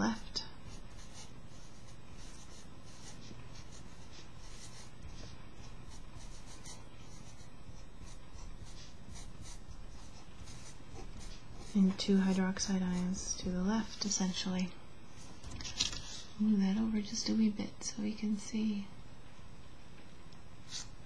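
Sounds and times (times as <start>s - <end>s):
steady background hum: 0.0s - 21.0s
marker writing on paper: 0.7s - 12.4s.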